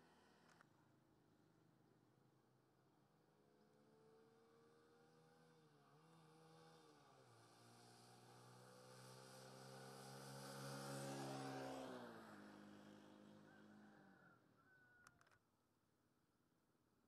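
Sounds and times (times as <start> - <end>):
motor vehicle passing by: 4.7 - 14.4.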